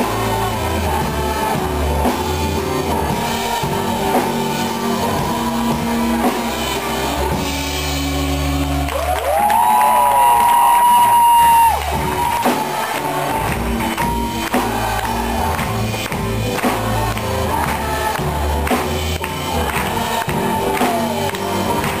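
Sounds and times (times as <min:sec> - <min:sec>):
rock band playing live: 0:00.0 - 0:22.0
people whooping: 0:08.6 - 0:13.0.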